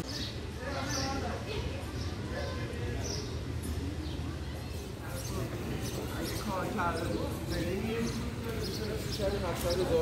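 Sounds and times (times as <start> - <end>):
outdoor background noise: 0.0 - 10.0
passers-by talking: 0.0 - 10.0.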